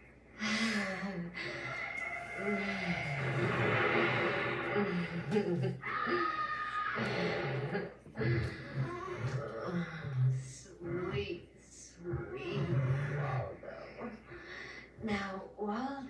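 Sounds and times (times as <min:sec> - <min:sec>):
faint music: 0:00.0 - 0:16.0
woman speaking on tv: 0:08.2 - 0:16.0.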